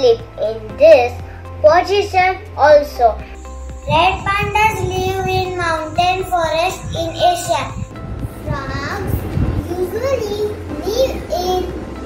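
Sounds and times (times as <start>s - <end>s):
background music: 0.0s - 12.0s
child singing: 3.8s - 11.8s.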